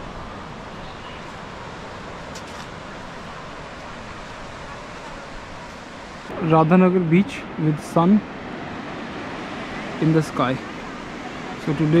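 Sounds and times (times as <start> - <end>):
gentle sea surf: 0.0 - 12.0.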